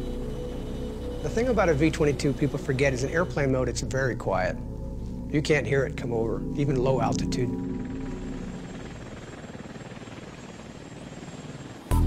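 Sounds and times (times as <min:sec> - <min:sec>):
aircraft rotors beating: 0:00.0 - 0:12.0
rushing drone: 0:00.0 - 0:12.0.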